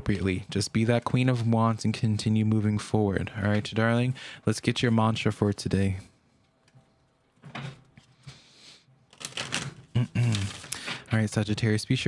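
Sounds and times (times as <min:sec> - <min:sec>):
cards shuffling: 0:09.1 - 0:11.0.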